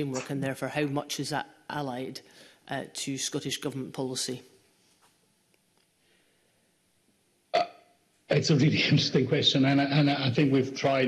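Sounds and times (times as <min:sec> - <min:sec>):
man saying uh: 0:08.3 - 0:11.0.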